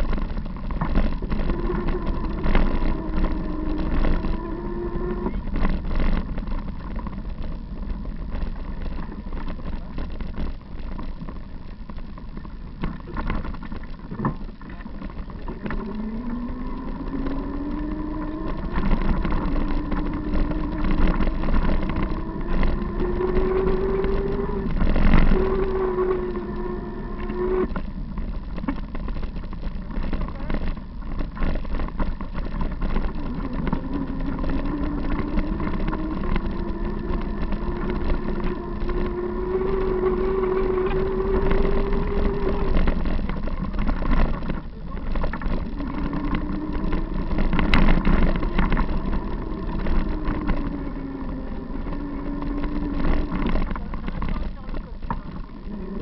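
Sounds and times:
bicycle rattling on dirt trail: 0.0s - 56.0s
whine rising in pitch: 0.0s - 56.0s.

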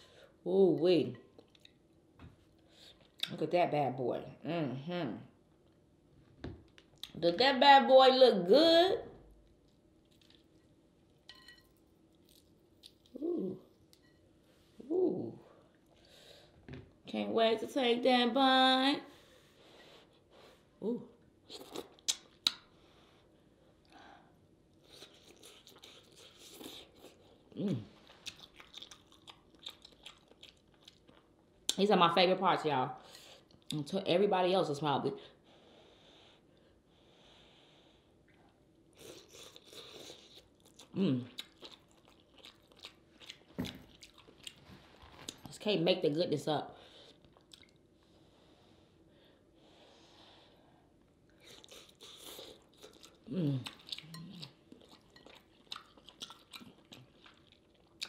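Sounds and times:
wet smacks and chewing: 9.5s - 10.7s, 28.1s - 31.8s, 39.0s - 45.5s, 47.2s - 47.8s, 51.3s - 58.0s.

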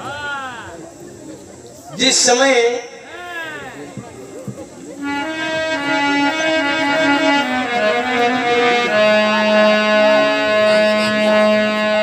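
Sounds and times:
harmonium sustained chord: 5.0s - 12.0s.

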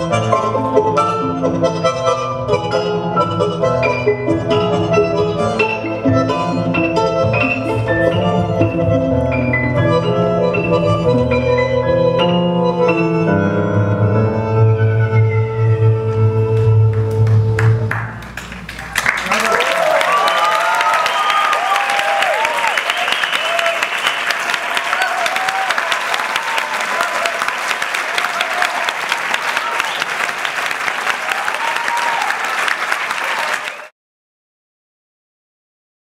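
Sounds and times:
tango music: 0.0s - 18.7s
audience applauding and cheering: 16.6s - 33.9s.

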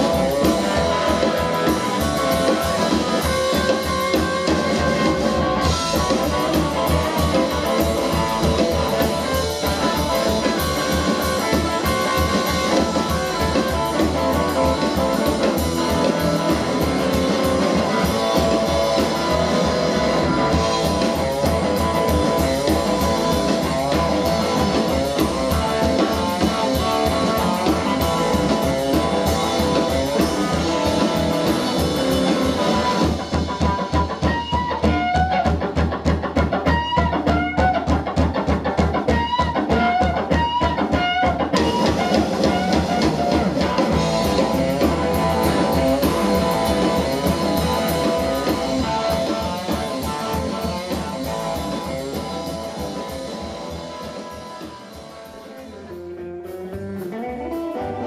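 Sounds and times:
upright bass: 0.0s - 34.2s, 41.6s - 58.0s
drums: 0.0s - 58.0s
electric guitar lead: 0.0s - 58.0s.

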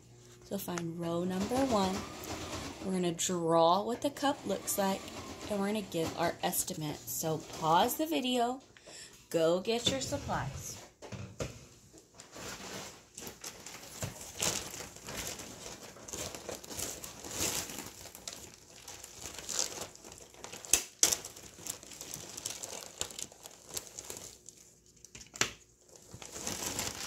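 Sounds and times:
crinkling and rustling: 9.7s - 27.0s.

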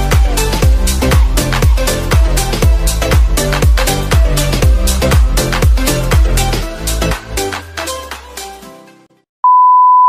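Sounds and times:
dance music: 0.0s - 8.8s
steady test tone beep: 9.4s - 10.0s.

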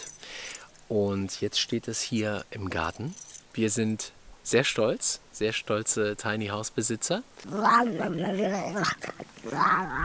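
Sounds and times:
dog wavering vocal sounds: 7.4s - 10.0s.

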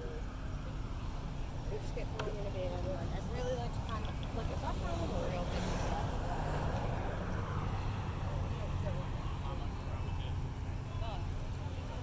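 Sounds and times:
distant chatter of people: 0.0s - 12.0s
vehicle passing: 0.0s - 12.0s.

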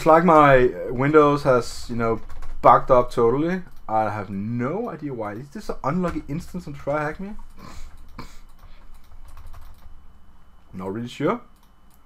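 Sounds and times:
computer keyboard keystrokes: 7.4s - 9.9s.

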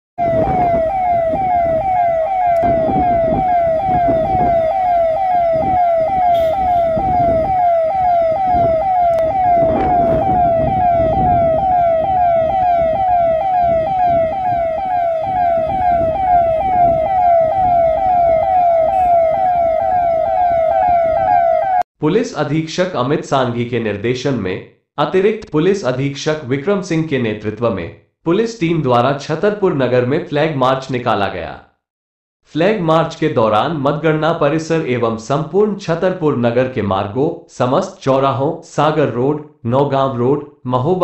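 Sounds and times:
police siren wailing: 0.2s - 21.8s
road and engine noise: 0.3s - 21.7s.

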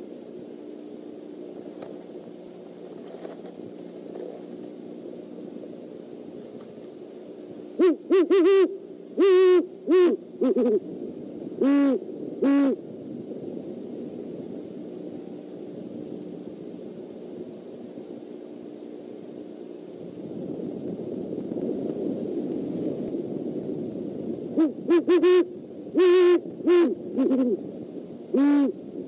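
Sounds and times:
owl hooting: 7.8s - 12.9s, 24.5s - 29.0s.

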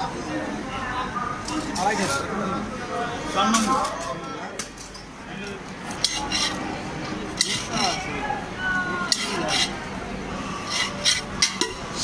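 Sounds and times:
metal spoon scraping in tumbler: 6.0s - 6.6s, 7.4s - 8.1s, 9.1s - 9.8s, 10.6s - 12.0s.

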